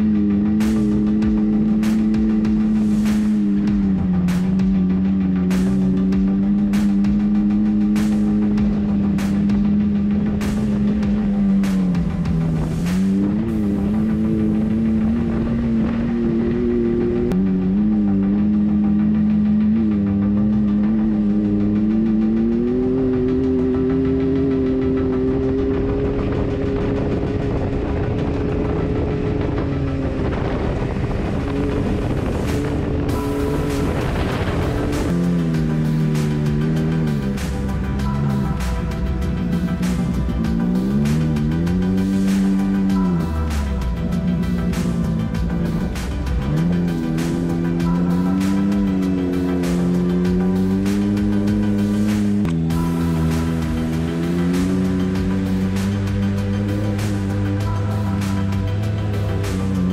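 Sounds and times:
engine running hard: 0:00.0 - 0:59.9.

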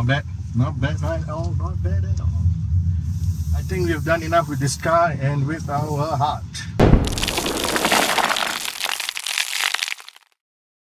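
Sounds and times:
heavy hit: 0:06.8 - 0:08.9
stone cracking and crumbling: 0:06.8 - 0:10.3.

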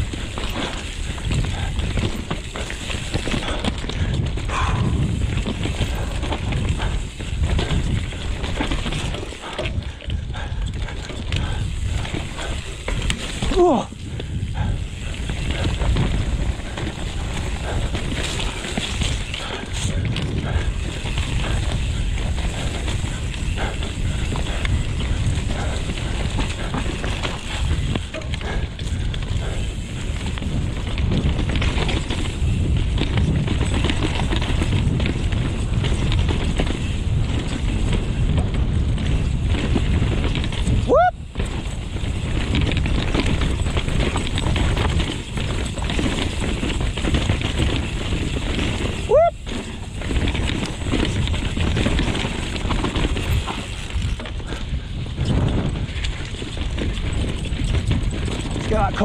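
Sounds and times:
bike rattling and knocking: 0:00.0 - 0:59.0
wind and tyres rumbling: 0:00.0 - 0:59.0.

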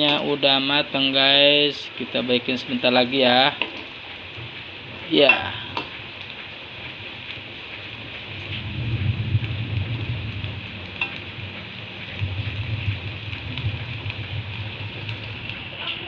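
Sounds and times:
food sizzling in oil: 0:00.0 - 0:16.0
low rumble: 0:07.9 - 0:16.0.

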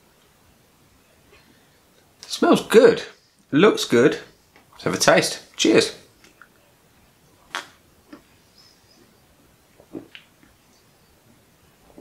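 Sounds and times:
person gulping beer: 0:09.8 - 0:10.3.

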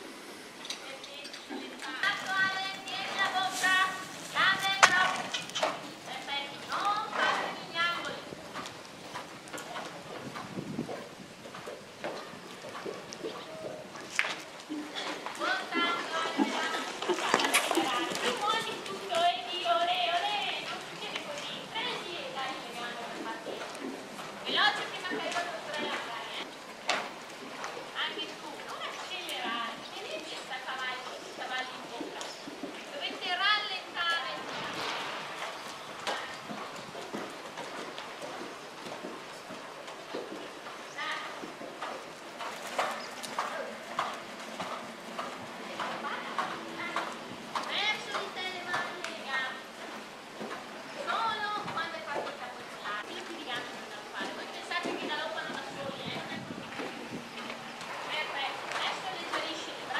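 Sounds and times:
hoofbeats on sand: 0:01.8 - 0:59.9.

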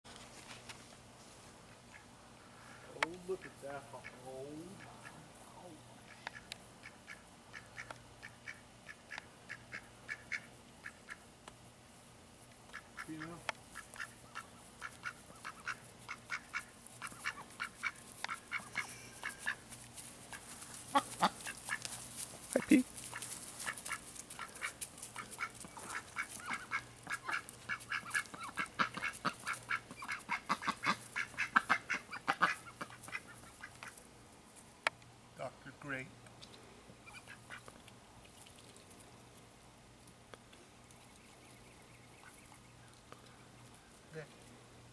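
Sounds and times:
ducks quacking: 0:03.1 - 0:05.3, 0:06.0 - 0:11.3, 0:12.7 - 0:21.9, 0:22.6 - 0:34.0, 0:37.0 - 0:37.7.

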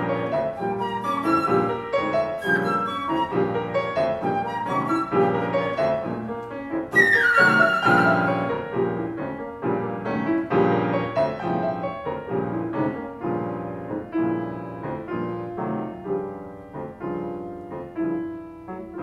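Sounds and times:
held flute note: 0:00.0 - 0:06.3, 0:06.9 - 0:08.7
grand piano playing classical music: 0:00.0 - 0:19.0.

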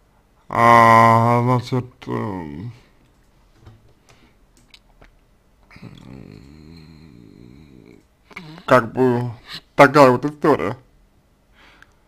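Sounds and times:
man humming hesitantly: 0:05.7 - 0:09.5.

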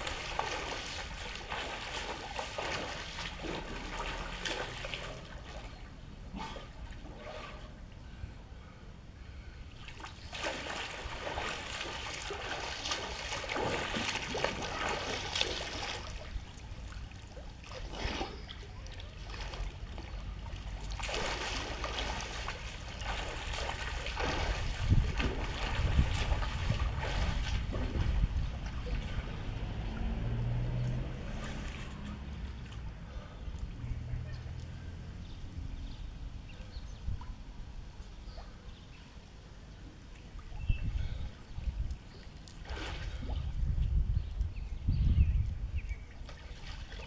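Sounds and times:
diving splash: 0:00.0 - 0:07.8, 0:09.8 - 0:18.6, 0:20.6 - 0:32.4, 0:42.6 - 0:43.4
swimming strokes splashing: 0:00.0 - 0:07.8, 0:09.8 - 0:33.8, 0:42.2 - 0:43.4
low steady hum: 0:00.0 - 0:47.0.

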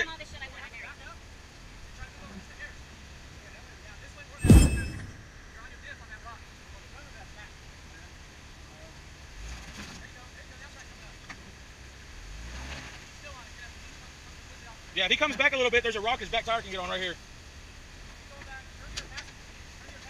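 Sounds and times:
vehicle engines rumbling: 0:00.0 - 0:20.0
loud bang with metallic ring: 0:04.4 - 0:05.3.

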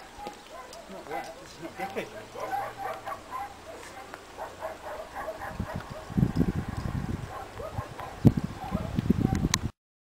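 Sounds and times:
wind blowing on microphone: 0:04.8 - 0:09.7.

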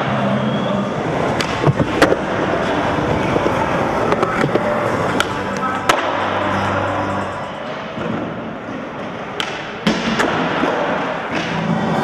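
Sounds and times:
skateboard wheels rolling: 0:00.0 - 0:06.2
background music: 0:03.6 - 0:08.4.

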